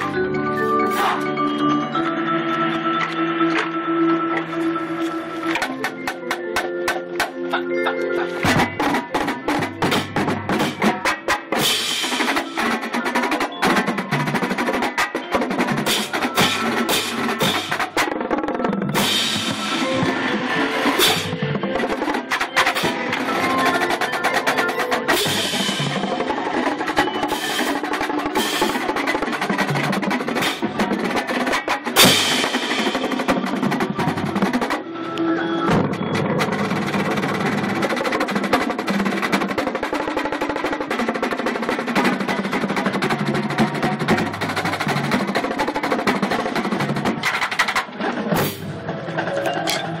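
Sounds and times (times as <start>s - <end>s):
marching drumline playing: 0.0s - 1.5s, 5.4s - 34.8s, 35.7s - 49.4s.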